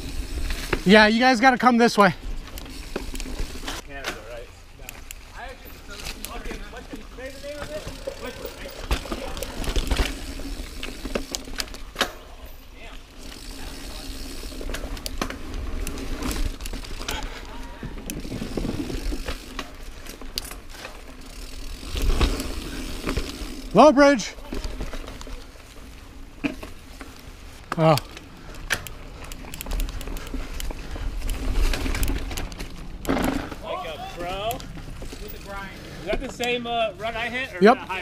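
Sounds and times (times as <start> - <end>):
bike tyres rolling on dirt: 0.0 - 38.0
bike clicks and knocks: 2.4 - 23.6, 26.3 - 33.7.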